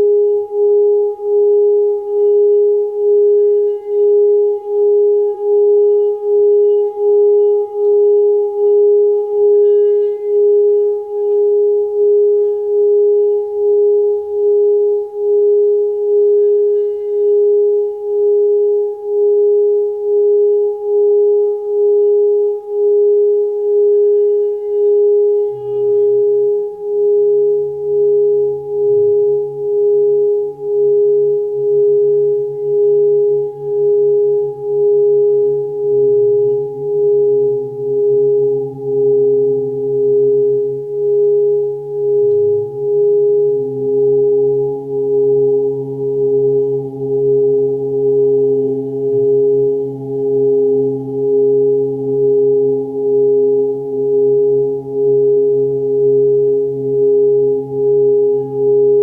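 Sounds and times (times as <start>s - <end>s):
lower humming tones: 0.0s - 59.0s
meditation drone tone: 0.0s - 59.0s.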